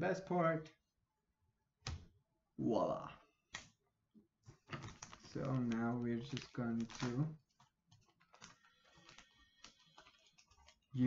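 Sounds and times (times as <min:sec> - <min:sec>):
plastic packaging rustling: 0:04.4 - 0:11.0.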